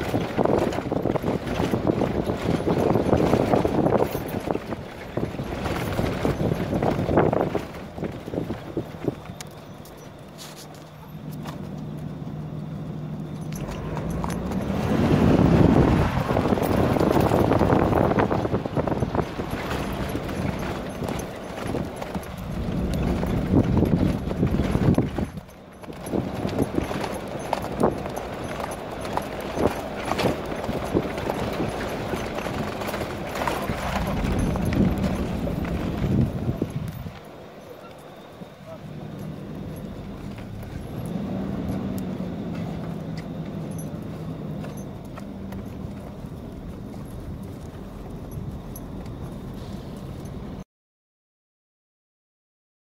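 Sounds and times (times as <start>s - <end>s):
horse hoofbeats cantering on dirt: 0.0s - 50.6s
low steady hum: 0.0s - 50.6s.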